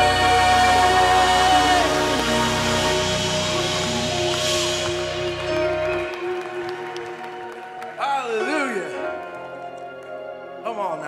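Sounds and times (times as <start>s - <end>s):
bass: 0.0s - 7.0s
sustained high pad: 0.0s - 7.6s
worship band music: 0.0s - 11.0s.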